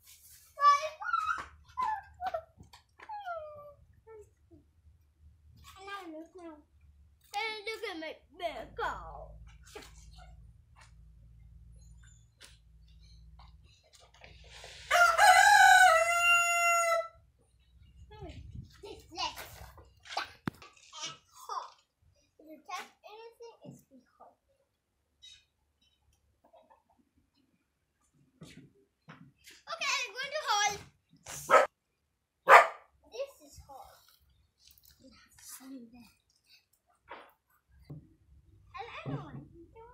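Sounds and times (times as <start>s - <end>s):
rooster crowing: 14.9s - 17.2s.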